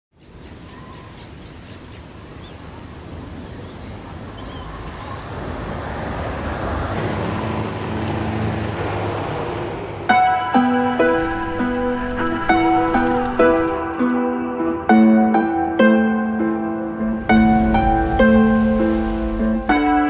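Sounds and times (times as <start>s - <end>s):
steady rushing noise: 5.4s - 15.0s, 16.6s - 20.0s
low steady drone: 16.8s - 20.0s.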